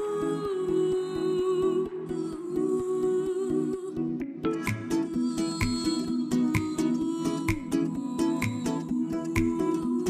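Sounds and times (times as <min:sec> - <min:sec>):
steady ticking beat: 0:04.6 - 0:09.8.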